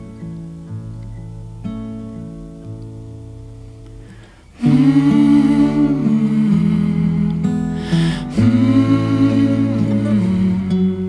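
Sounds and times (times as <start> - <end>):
soft acoustic guitar: 0.0 - 11.0
person singing: 4.5 - 11.0.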